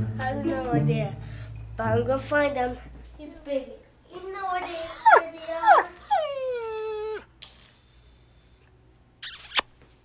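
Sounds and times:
dog whining: 4.6 - 9.6.

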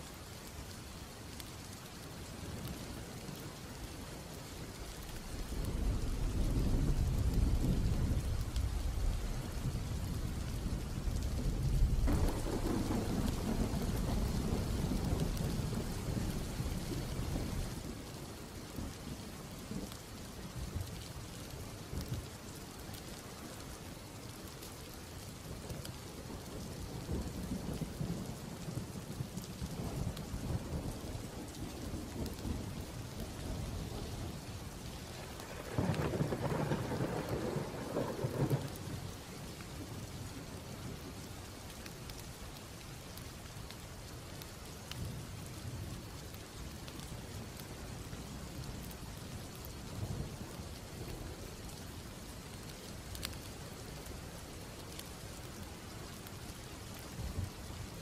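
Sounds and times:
steady rain: 0.0 - 58.0
thunder rumbling: 5.3 - 17.8, 26.3 - 39.2.

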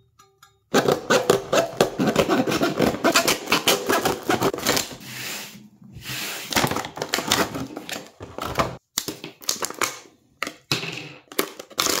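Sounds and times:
hand saw rasping through cardboard: 0.8 - 6.6.

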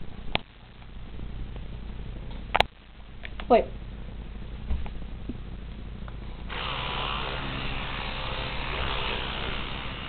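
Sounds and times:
electric toothbrush buzzing: 6.5 - 10.0.

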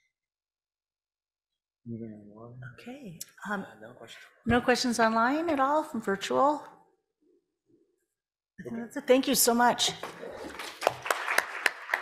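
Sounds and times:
audience applauding: 10.2 - 12.0.

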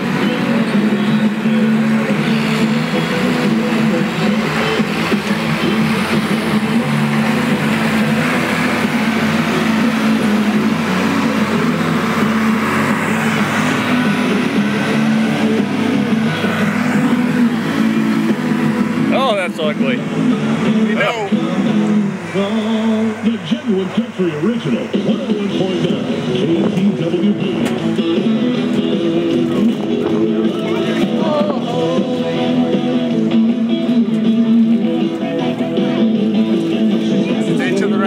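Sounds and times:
tractor engine running under load: 0.0 - 38.0.

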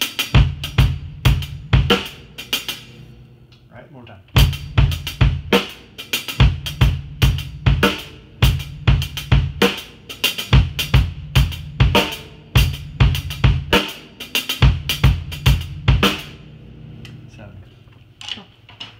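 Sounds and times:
drum kit playing groove: 0.0 - 17.6.

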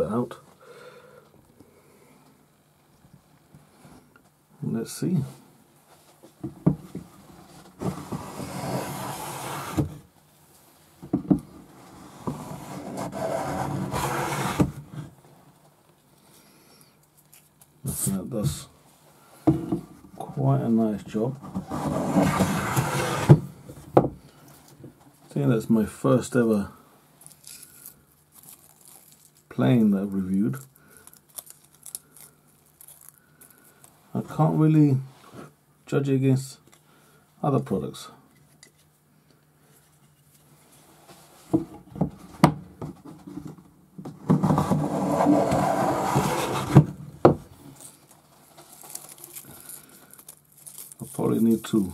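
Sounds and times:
hand plane shaving wood: 7.8 - 9.9, 11.8 - 14.8, 21.6 - 23.4, 44.5 - 46.9.

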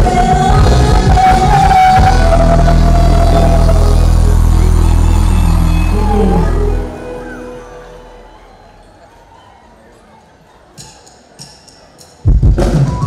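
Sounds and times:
woman singing long note: 0.0 - 8.4
live band music: 0.0 - 8.7, 10.8 - 13.0.

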